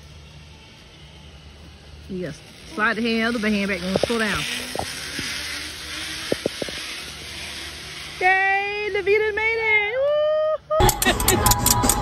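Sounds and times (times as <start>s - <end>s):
zip-line trolley hissing on cable: 0.0s - 12.0s.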